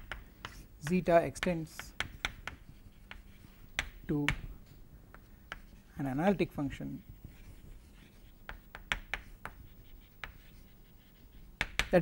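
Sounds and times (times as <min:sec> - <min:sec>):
chalk tapping and scraping on board: 0:00.0 - 0:04.5, 0:05.1 - 0:05.9, 0:07.0 - 0:12.0.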